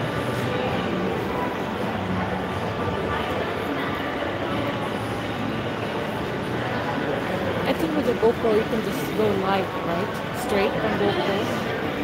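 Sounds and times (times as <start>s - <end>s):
indoor crowd noise: 0.0s - 12.0s.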